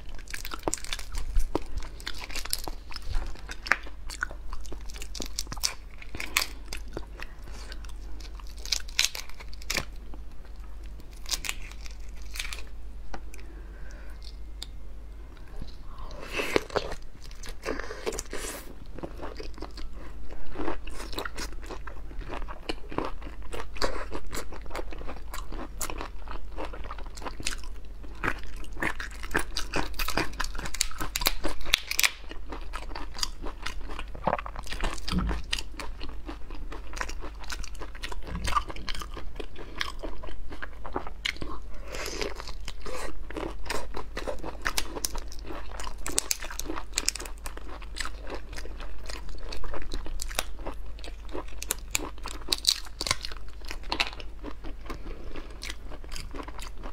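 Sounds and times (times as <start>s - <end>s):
person chewing wetly: 15.4s - 56.9s.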